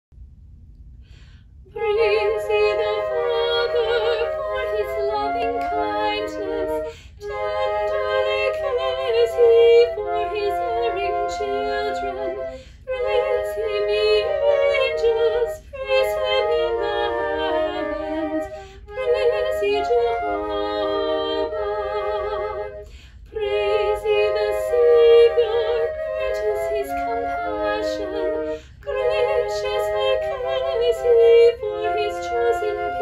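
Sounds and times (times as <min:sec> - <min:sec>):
flutes playing in harmony: 0:01.7 - 0:33.0
soprano voice singing a hymn: 0:01.7 - 0:33.0.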